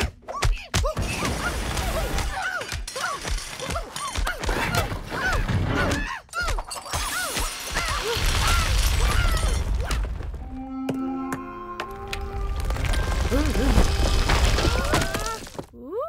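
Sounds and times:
crashing and rattling effects: 0:12.1 - 0:15.7.

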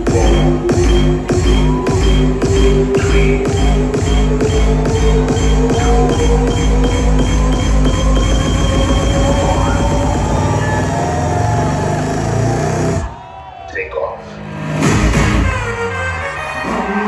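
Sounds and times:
loud concert music with heavy bass: 0:00.0 - 0:17.0.

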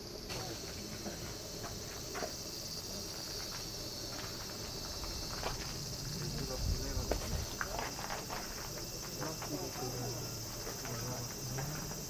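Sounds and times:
cicadas droning: 0:00.0 - 0:12.0
faint voices: 0:05.9 - 0:12.0.

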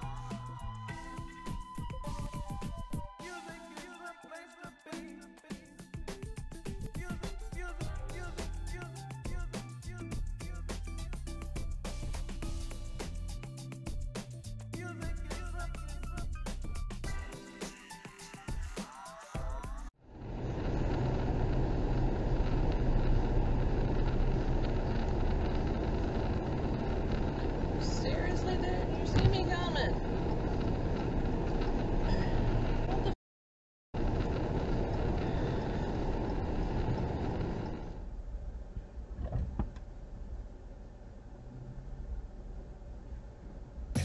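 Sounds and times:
road and tyre noise inside car: 0:20.1 - 0:33.2, 0:34.0 - 0:44.0.

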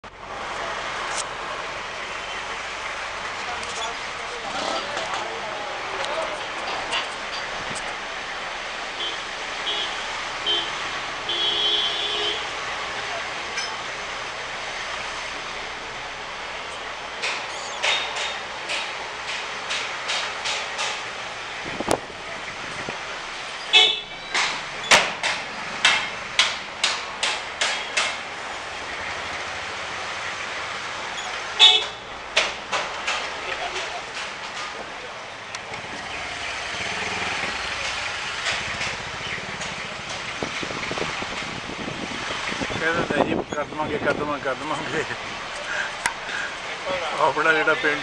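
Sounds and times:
road noise: 0:00.0 - 0:48.0
street traffic: 0:00.0 - 0:48.0
vehicle horn beeping: 0:09.0 - 0:12.6, 0:23.7 - 0:24.4, 0:31.6 - 0:32.1.

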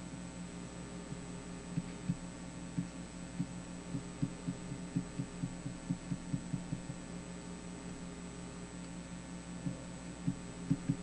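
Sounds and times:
steady electrical hum: 0:00.0 - 0:11.0
muffled knocks on a desk: 0:09.7 - 0:11.0.

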